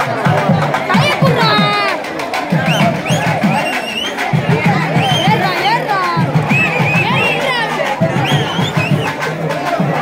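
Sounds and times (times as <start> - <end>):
crowd voices and shouts: 0.0 - 10.0
loud festival music with low beat: 0.0 - 10.0.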